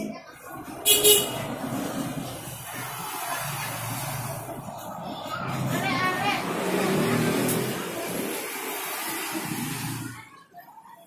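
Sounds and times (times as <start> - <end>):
traffic engine hum: 0.0 - 11.0.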